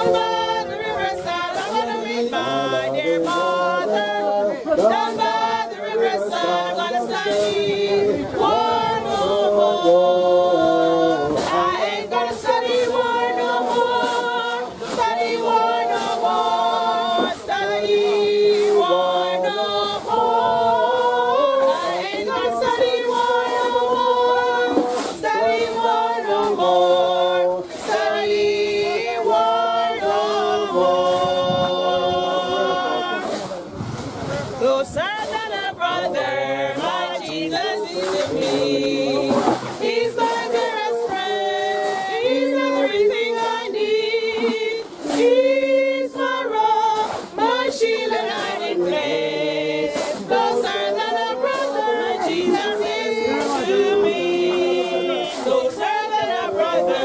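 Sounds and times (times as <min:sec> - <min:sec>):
women singing a cappella: 0:00.0 - 0:33.6, 0:34.6 - 0:57.0.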